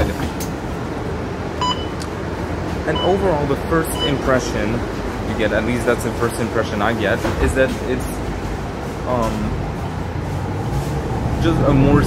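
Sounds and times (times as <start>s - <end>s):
bus engine humming: 0.0s - 12.0s
short electronic beep: 1.6s - 2.0s.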